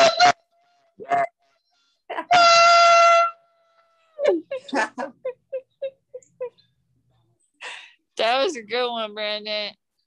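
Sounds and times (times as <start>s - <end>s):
laughter: 4.3s - 6.5s.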